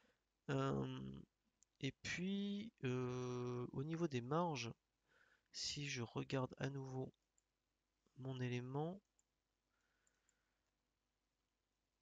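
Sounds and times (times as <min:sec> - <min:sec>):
faint computer mouse clicks: 0:09.1 - 0:10.5.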